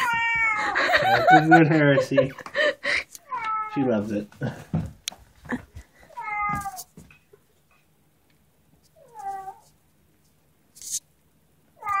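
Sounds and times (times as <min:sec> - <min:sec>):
kitten meowing: 0:00.0 - 0:00.7
brief rustle: 0:10.8 - 0:11.0.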